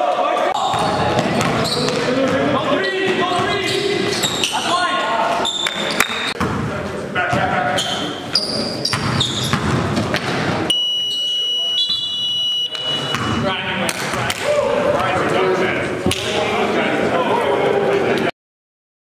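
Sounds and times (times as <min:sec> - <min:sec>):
players shouting: 0:00.0 - 0:06.4, 0:13.5 - 0:18.3
sneaker squeaks on court: 0:00.6 - 0:02.1, 0:02.8 - 0:04.6, 0:07.8 - 0:09.8, 0:12.8 - 0:13.4
basketball bouncing: 0:00.6 - 0:04.2, 0:08.9 - 0:10.5, 0:13.1 - 0:14.4.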